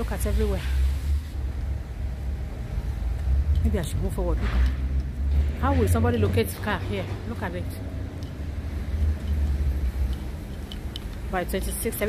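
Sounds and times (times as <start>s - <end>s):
low rumble of engines and machinery: 0.0s - 12.0s.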